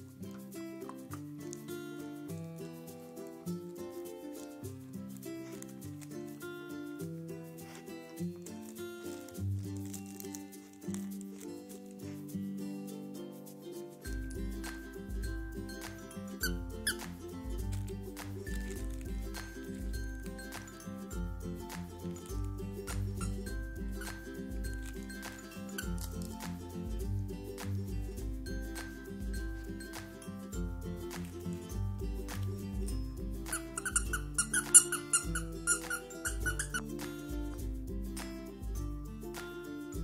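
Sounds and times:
background music: 0.0 - 40.0
squeaky dog toy squeaking: 16.4 - 17.2, 22.9 - 26.2, 33.5 - 36.9.

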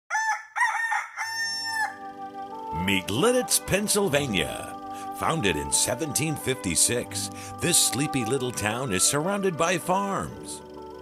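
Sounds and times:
rooster crowing: 0.1 - 2.1.

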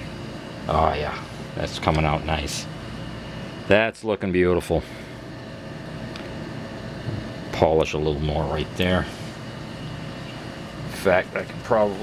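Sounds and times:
mechanical whir and hiss: 0.0 - 12.0.

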